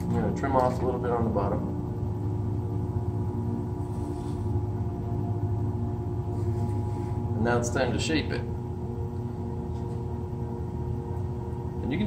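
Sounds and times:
potter's wheel motor humming: 0.0 - 12.0.

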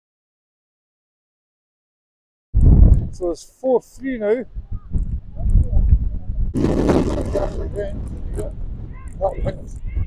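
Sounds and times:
wind buffeting microphone: 2.6 - 3.4, 4.2 - 10.0.

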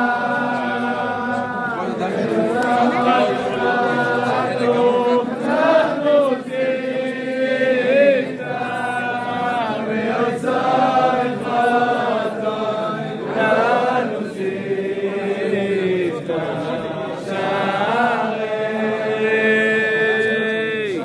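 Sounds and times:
crowd singing in unison: 0.0 - 21.0.

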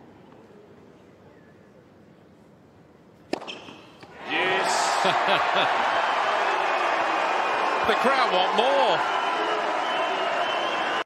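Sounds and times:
racket hitting tennis ball: 3.3 - 4.1
crowd cheering and shouting: 4.2 - 11.0.

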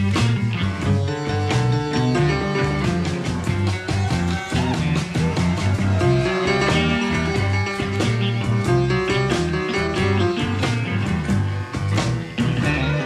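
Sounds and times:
electric blues band playing: 0.0 - 13.0.

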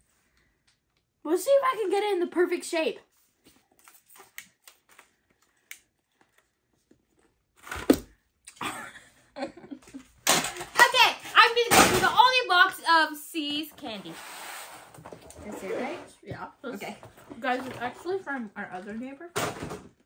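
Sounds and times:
laughter: 8.6 - 10.2.

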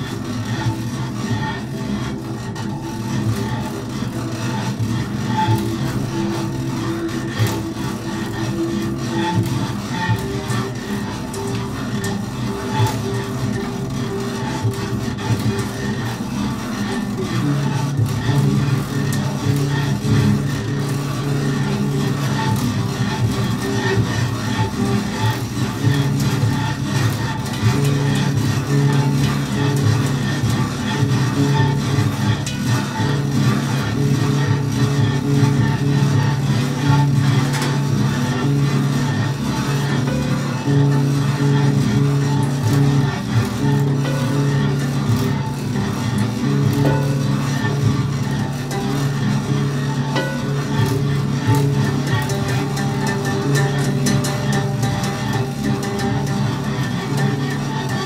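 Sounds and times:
bowed double bass drones: 0.0 - 58.0.

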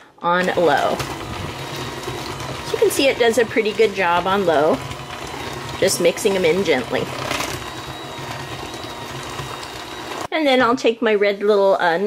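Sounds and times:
electric hand mixer running: 0.4 - 10.3.

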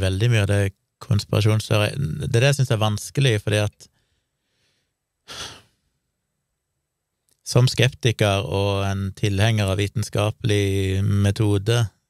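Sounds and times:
man breathing: 3.9 - 5.8.

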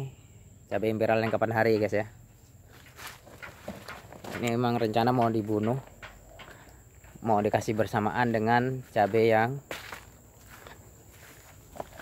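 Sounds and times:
faint footsteps: 1.2 - 12.0.

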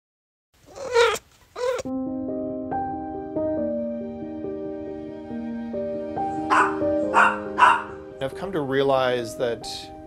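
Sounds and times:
soft slow instrumental music: 1.6 - 10.0
dog barking: 6.4 - 8.0.

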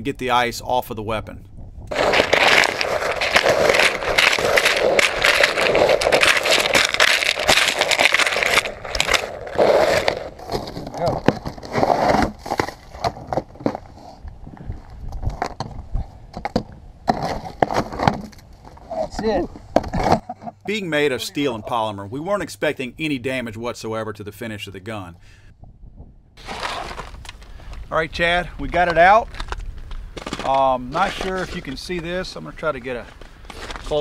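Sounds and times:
ice chunks knocking and crackling: 1.9 - 13.9, 26.4 - 27.5, 28.8 - 31.5
ice crunching and scraping: 1.9 - 20.6, 26.4 - 34.0.

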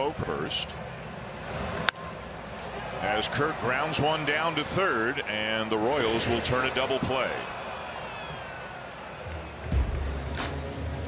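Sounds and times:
ballpark crowd noise: 0.0 - 10.6
stadium music with heavy bass beat: 9.7 - 11.0.

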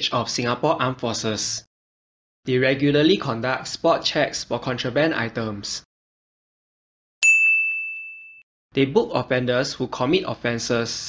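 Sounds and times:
bell-like ding: 7.2 - 8.4.

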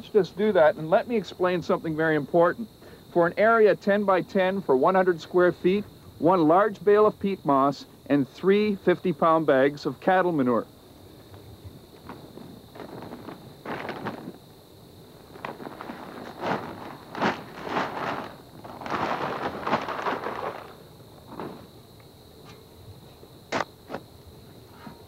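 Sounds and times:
plastic bags rustling: 11.9 - 21.7
material sliding out of bags: 12.1 - 14.4, 15.2 - 21.7.

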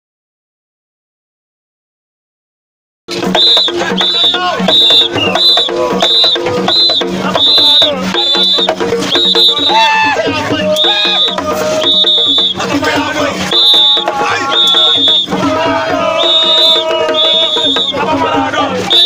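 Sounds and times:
drumming: 3.1 - 19.0
voices chanting: 3.1 - 19.0
high shrill repeated note: 3.2 - 12.7, 13.3 - 18.0.

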